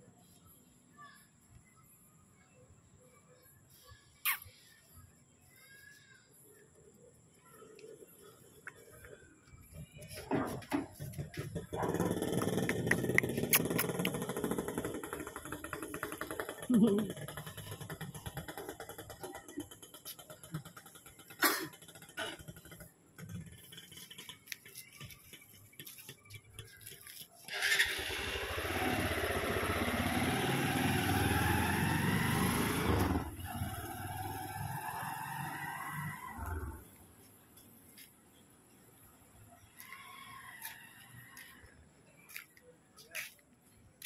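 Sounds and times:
motorcycle engine running: 11.1 - 26.3, 27.9 - 35.0.

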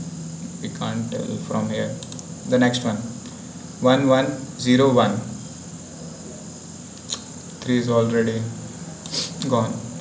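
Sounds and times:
faint low hum: 0.0 - 10.0
high-pitched whine: 0.0 - 10.0.

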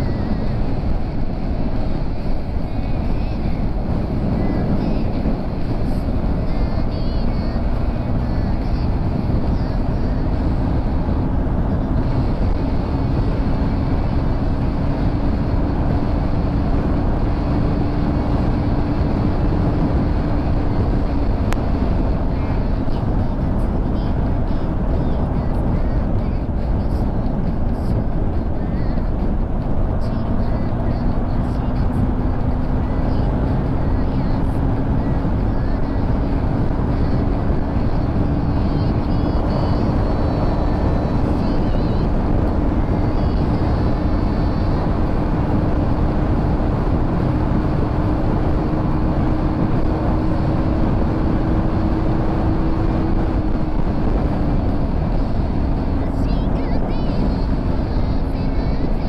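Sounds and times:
motorcycle engine hum: 0.0 - 59.0
wind rush on microphone: 0.0 - 59.0.

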